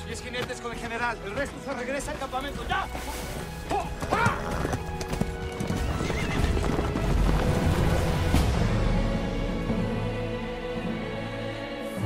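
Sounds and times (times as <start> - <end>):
hoofbeats on dirt: 0.0 - 8.2
horse whinnying: 4.0 - 5.0, 5.7 - 7.0.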